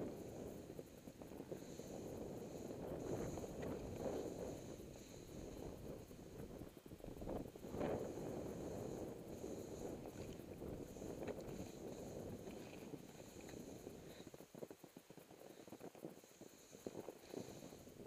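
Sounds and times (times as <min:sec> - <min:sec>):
wind on microphone: 0:00.0 - 0:18.0.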